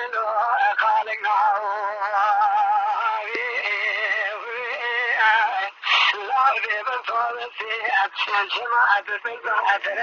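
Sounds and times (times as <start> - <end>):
man singing unaccompanied: 0.0 - 10.0.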